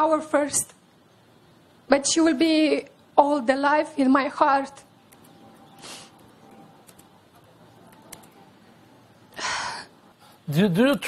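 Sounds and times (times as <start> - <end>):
faint room hiss: 0.0 - 11.0
person's sharp intake of breath: 5.8 - 6.2.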